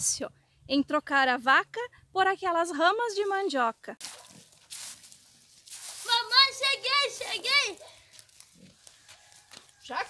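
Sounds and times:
woman speaking: 0.0s - 4.0s.

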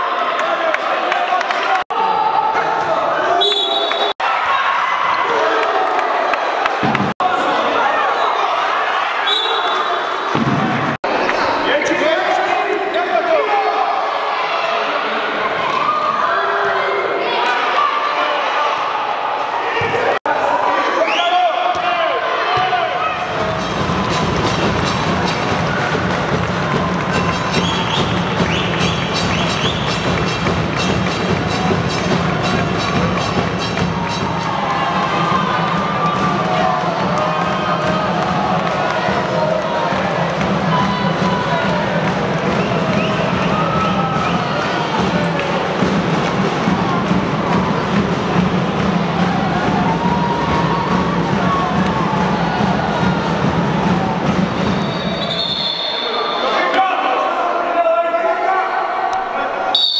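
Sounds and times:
crowd cheering and shouting: 0.0s - 59.9s.

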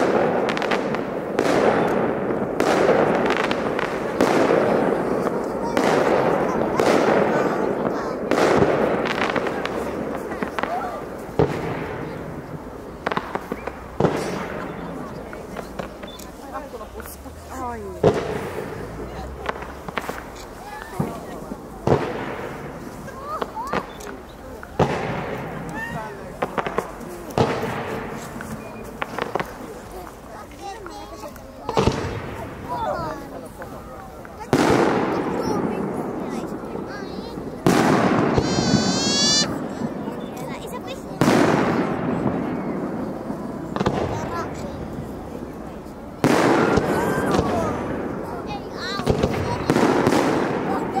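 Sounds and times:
fireworks bursting: 0.0s - 51.0s
firework whistle rising: 38.4s - 39.5s.

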